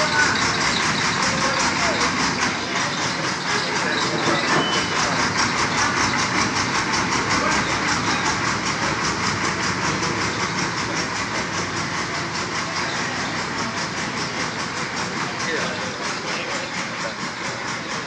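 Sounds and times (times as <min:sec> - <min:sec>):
diesel engine running: 0:00.0 - 0:18.0.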